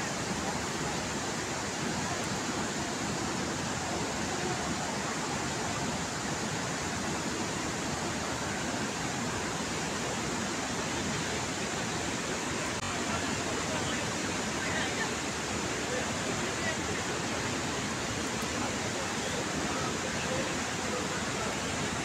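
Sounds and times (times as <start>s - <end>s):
steady rushing outdoor noise: 0.0s - 22.0s.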